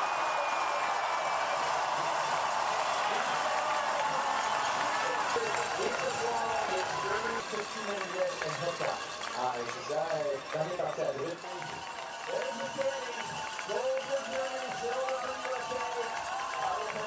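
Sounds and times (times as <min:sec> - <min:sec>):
crowd cheering: 0:00.0 - 0:17.0.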